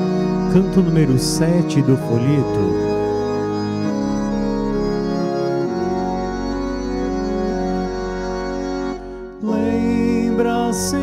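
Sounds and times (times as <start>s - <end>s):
organ playing sustained chords: 0.0s - 11.0s.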